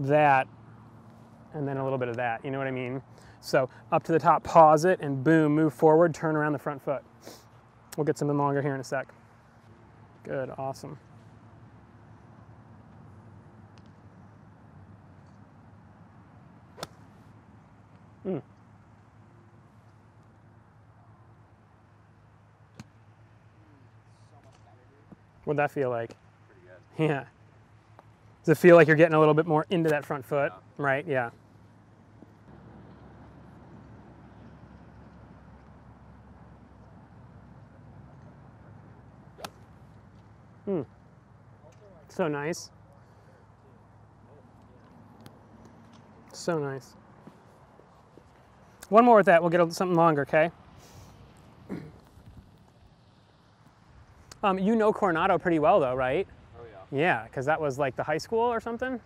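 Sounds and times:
faint background noise: 0.0s - 59.0s
low outdoor background noise: 0.0s - 59.0s
golf iron striking ball: 16.8s - 17.2s, 39.4s - 40.2s.

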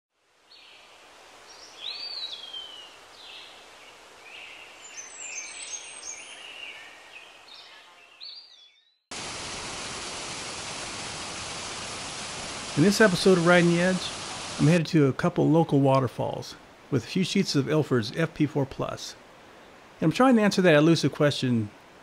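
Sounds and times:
faint outdoor hiss: 0.1s - 22.0s
birds chirping: 1.5s - 9.0s
waterfall rushing: 9.1s - 22.0s.

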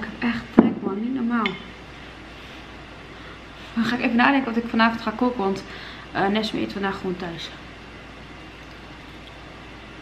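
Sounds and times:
low room tone hiss: 0.0s - 10.0s.

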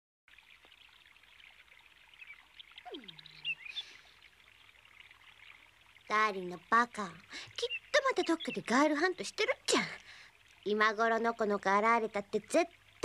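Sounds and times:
watery hiss with ticks: 0.3s - 13.0s.

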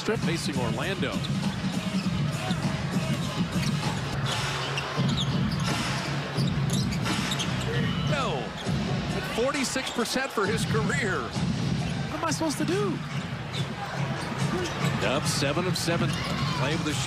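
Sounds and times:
arena crowd din: 0.0s - 17.0s
music: 0.0s - 17.0s.

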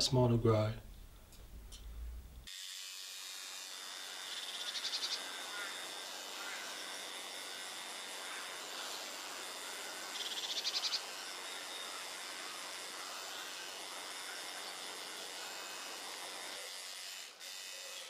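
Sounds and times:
outdoor background hiss: 0.0s - 18.0s.

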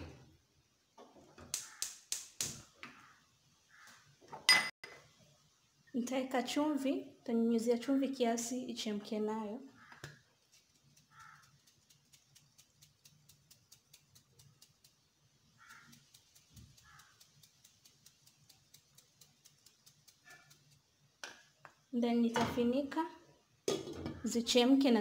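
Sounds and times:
bird caws: 1.6s - 2.0s, 2.8s - 4.1s, 9.7s - 10.2s, 11.0s - 11.6s, 15.5s - 17.3s, 20.2s - 20.6s
faint even ticking: 10.5s - 21.0s.

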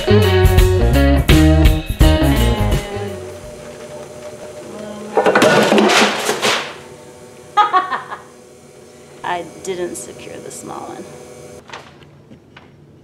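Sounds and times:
potter's wheel spinning: 2.4s - 11.6s.

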